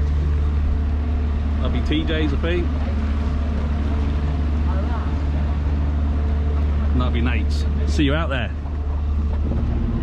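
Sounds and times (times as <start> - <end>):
motorboat engine droning: 0.0 - 10.0.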